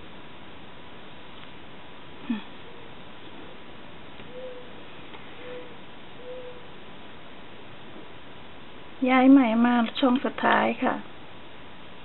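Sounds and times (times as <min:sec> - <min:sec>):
steady background hiss: 0:00.0 - 0:12.0
bird hooting calls: 0:04.2 - 0:06.8.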